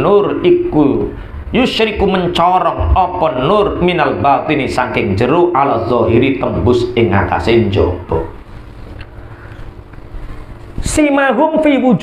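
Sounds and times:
low background rumble: 0:00.0 - 0:10.8
faint hum: 0:00.0 - 0:12.0.

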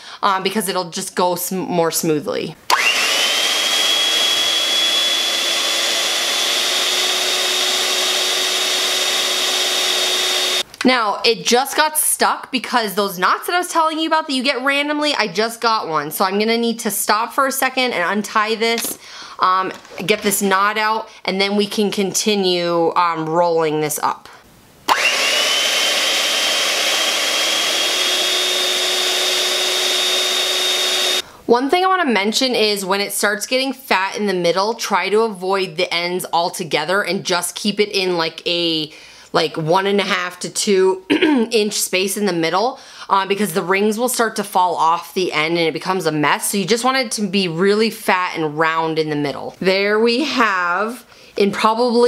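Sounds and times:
hand mixer motor whine: 0:02.7 - 0:10.6, 0:24.9 - 0:31.2.

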